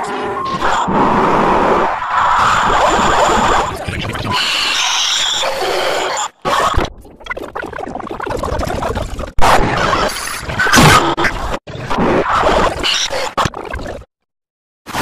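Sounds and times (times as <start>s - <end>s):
distorted logo clip audio: 0.0s - 7.6s
distorted cartoon voices: 1.9s - 13.9s.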